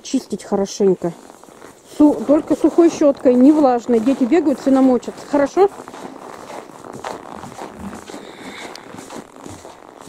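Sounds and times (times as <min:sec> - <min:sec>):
people rustling and shuffling: 0:00.5 - 0:10.0.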